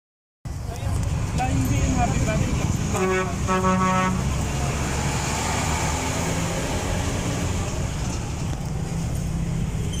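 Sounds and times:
road traffic noise: 0:00.4 - 0:10.0
engine rumble: 0:00.5 - 0:10.0.

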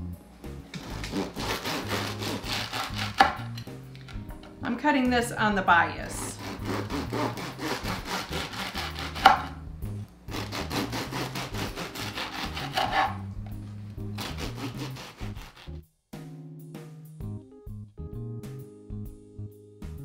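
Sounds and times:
light background music: 0:00.0 - 0:20.0
bread knife sawing crusty bread: 0:00.8 - 0:03.5, 0:06.2 - 0:09.6, 0:10.3 - 0:13.2, 0:14.1 - 0:15.8.

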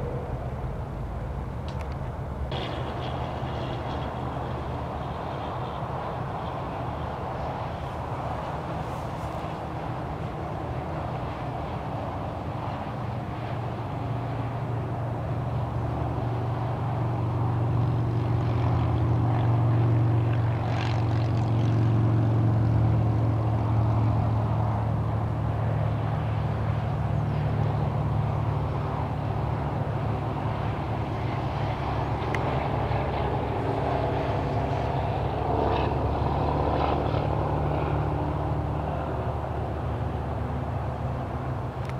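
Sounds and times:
distant motor droning: 0:00.0 - 0:41.9.

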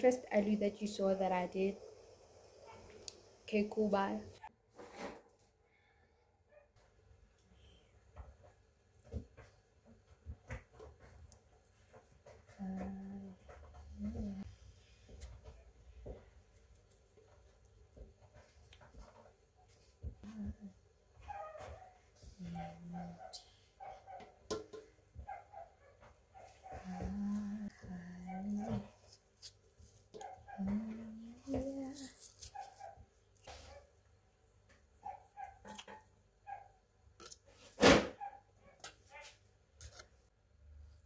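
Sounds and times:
person humming low: 0:20.2 - 0:20.8, 0:30.6 - 0:32.1.

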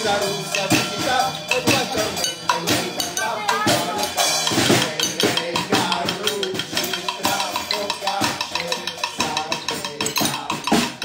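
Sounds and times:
snare and bass drum beat: 0:00.0 - 0:11.0.

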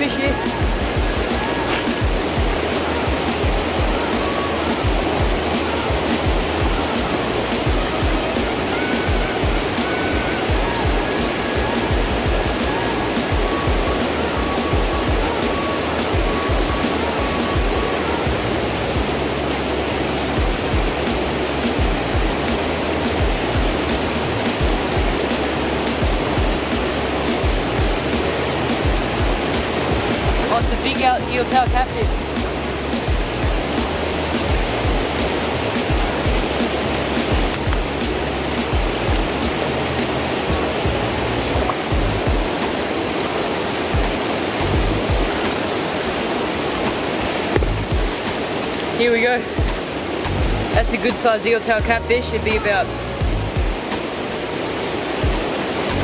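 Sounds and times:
wind buffeting microphone: 0:00.0 - 0:51.0
creek water rushing: 0:00.0 - 0:56.0.

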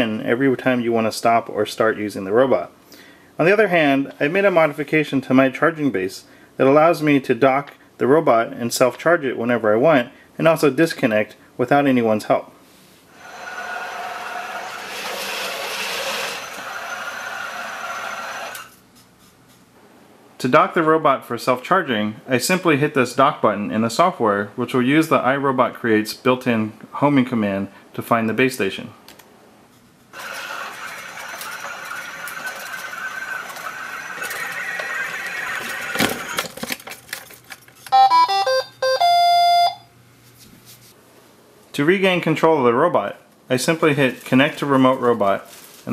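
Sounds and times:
robot drive motor whine: 0:13.2 - 0:18.7, 0:30.2 - 0:36.4
electronic beeps: 0:37.9 - 0:39.9
long electronic tone: 0:38.0 - 0:39.9.

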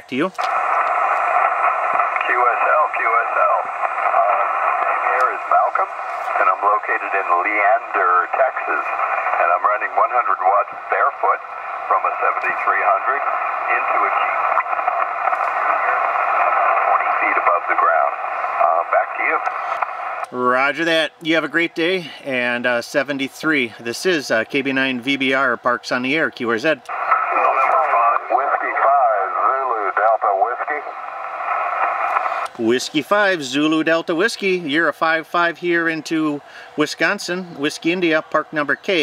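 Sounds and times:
static hiss: 0:00.0 - 0:25.5, 0:26.6 - 0:39.0
radio voice speaking: 0:00.0 - 0:39.0.

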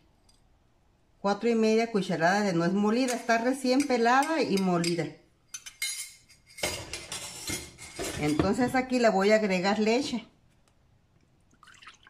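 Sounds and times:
dishware clattering: 0:04.2 - 0:08.9.

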